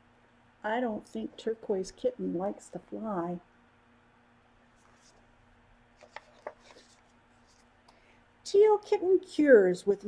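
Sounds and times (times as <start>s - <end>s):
book pages rustling: 4.7s - 5.3s, 5.9s - 7.7s.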